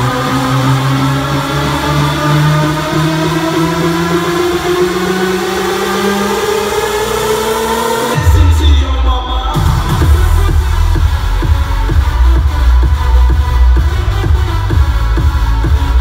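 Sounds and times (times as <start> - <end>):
heavy bass: 0.0 - 16.0
house music over club sound system: 0.0 - 16.0
steady kick drum: 9.5 - 16.0.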